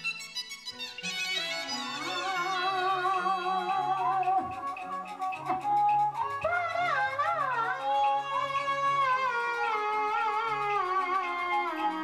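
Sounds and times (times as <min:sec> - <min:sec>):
high wind instrument melody: 0:00.0 - 0:12.0.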